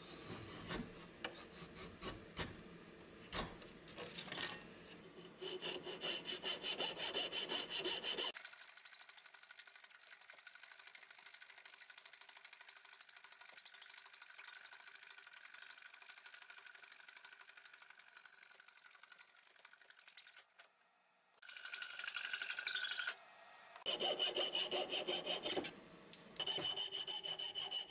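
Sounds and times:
hand saw cutting wood: 5.3s - 8.4s, 23.8s - 25.7s, 26.4s - 27.9s.

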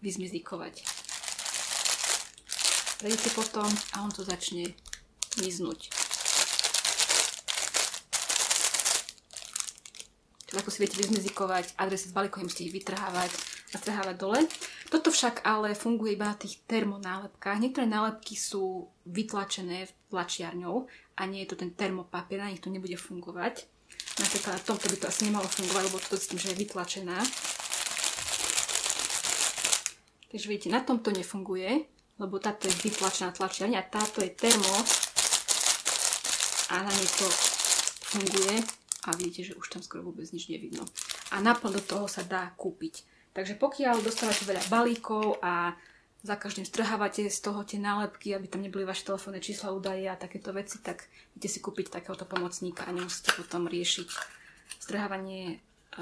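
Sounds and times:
plastic bag crinkling: 0.8s - 15.3s, 23.9s - 30.0s, 32.4s - 39.7s, 40.6s - 42.3s, 43.8s - 45.4s, 54.0s - 54.4s.

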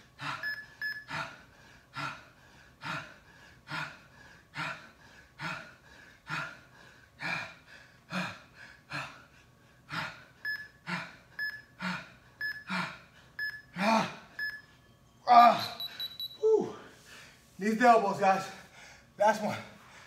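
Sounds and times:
man breathing hard: 0.0s - 14.4s, 18.4s - 20.0s
timer beeps: 0.4s - 1.2s, 10.4s - 10.8s, 11.4s - 11.8s, 12.4s - 12.8s, 13.4s - 13.8s, 14.4s - 16.4s
man groaning and sighing: 13.7s - 14.3s, 15.2s - 15.8s, 16.4s - 17.0s.

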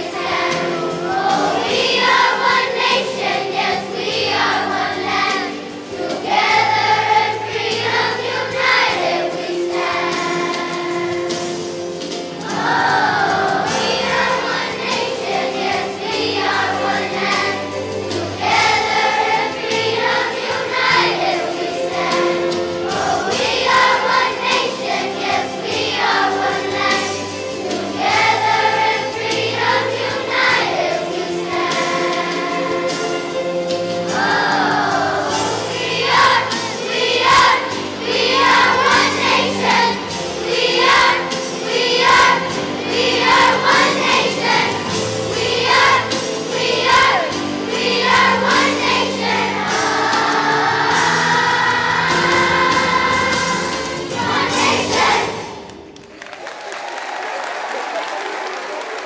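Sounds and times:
children's choir singing: 0.0s - 56.0s
instrumental accompaniment: 0.0s - 56.1s.

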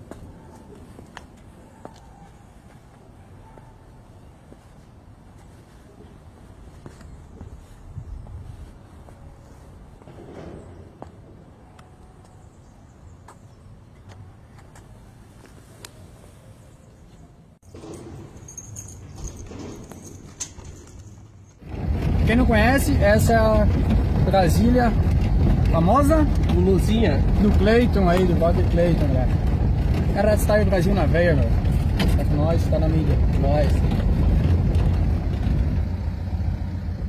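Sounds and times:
car engine running: 21.6s - 37.0s
low steady rumble: 21.6s - 37.0s.

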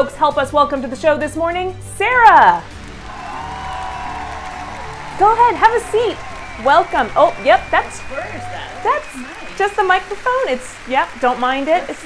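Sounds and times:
light background music: 0.0s - 12.0s
audience applause: 2.6s - 12.0s.

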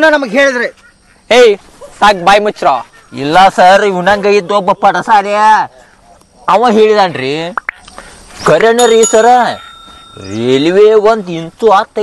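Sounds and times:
bell ding sound effect: 8.8s - 10.7s.

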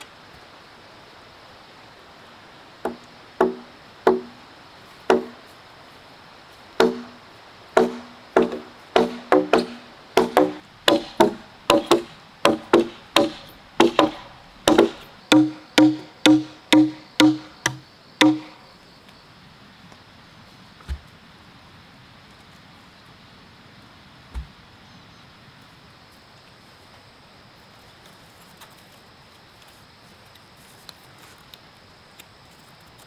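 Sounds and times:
blade chopping into wooden log: 6.8s - 7.2s, 7.8s - 18.6s.

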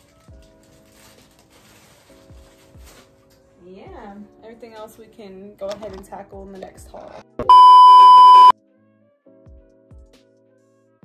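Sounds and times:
soft music: 0.0s - 11.0s
high test tone beep: 7.4s - 8.5s.

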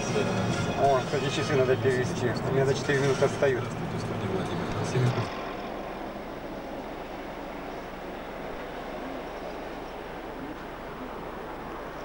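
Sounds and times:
distant traffic hum: 0.0s - 12.0s
low drone: 0.0s - 12.0s.

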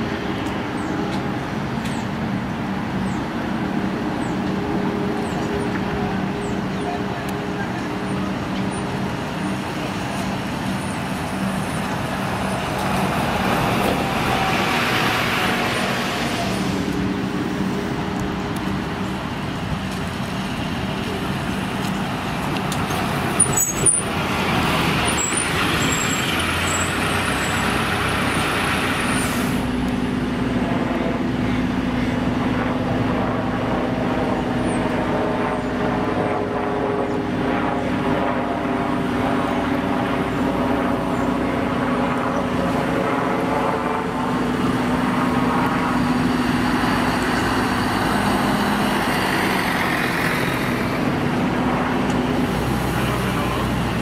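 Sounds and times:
bus engines humming: 0.0s - 54.0s.

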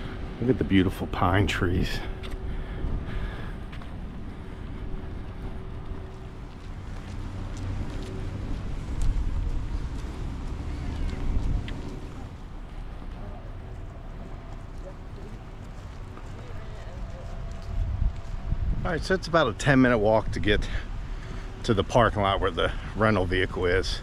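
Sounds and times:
wind buffeting microphone: 0.0s - 24.0s.

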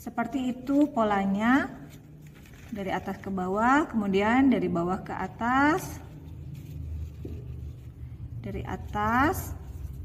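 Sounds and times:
low background rumble: 2.0s - 10.0s.

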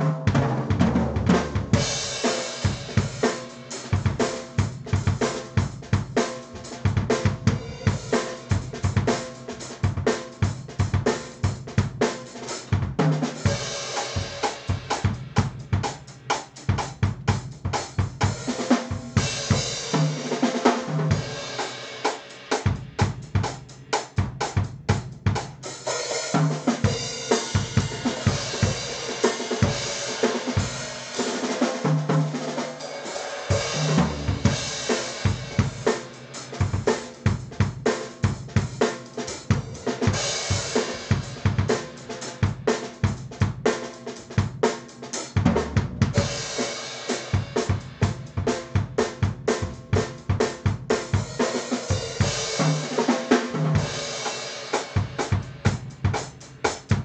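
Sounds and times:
double-kick bass drum: 3.9s - 12.0s, 12.7s - 19.8s, 22.6s - 25.6s, 33.5s - 35.9s, 36.6s - 43.7s, 45.4s - 46.4s, 47.3s - 51.4s, 55.0s - 57.0s.

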